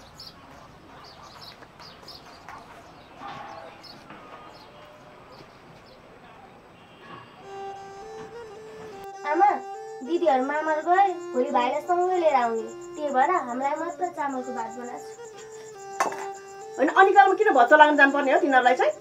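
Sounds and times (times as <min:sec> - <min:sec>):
birds chirping: 0:00.0 - 0:19.0
steady musical tones: 0:07.4 - 0:19.0.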